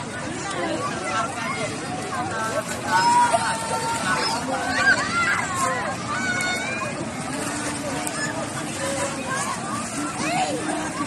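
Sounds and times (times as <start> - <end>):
people's voices: 0.0 - 11.0
water washing: 0.0 - 11.0
children calling out: 2.8 - 7.1.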